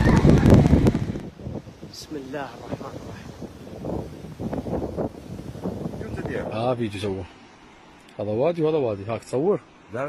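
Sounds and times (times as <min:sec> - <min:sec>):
wind buffeting microphone: 0:00.0 - 0:07.3
floodwater rushing: 0:00.0 - 0:10.0.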